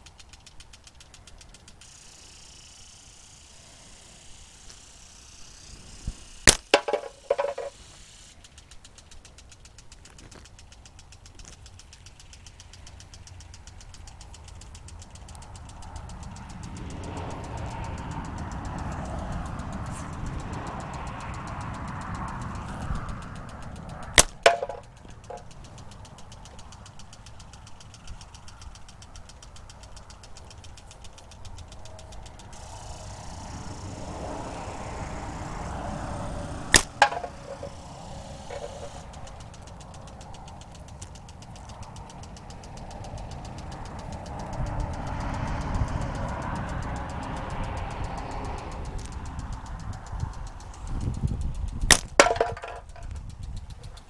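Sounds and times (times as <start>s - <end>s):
slingshot snap and crack: 0.0s - 54.0s
vehicle engine rumbling: 0.0s - 54.0s.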